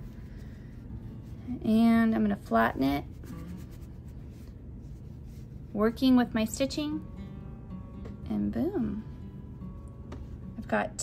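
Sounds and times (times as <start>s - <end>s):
scratchy rubbing of yarn: 0.0s - 6.6s
soft background music: 0.0s - 11.0s.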